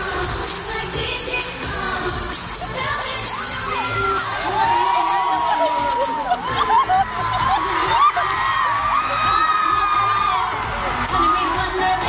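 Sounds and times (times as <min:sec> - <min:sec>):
pop song over sound system: 0:00.0 - 0:12.0
crowd cheering: 0:03.1 - 0:12.0.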